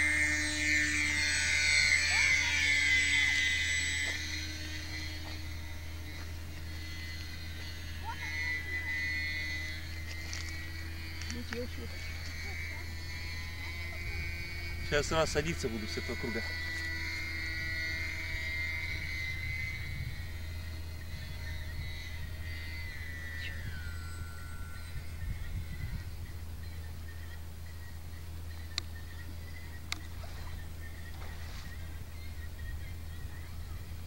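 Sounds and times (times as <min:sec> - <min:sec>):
model plane motor whine: 0:00.0 - 0:34.0.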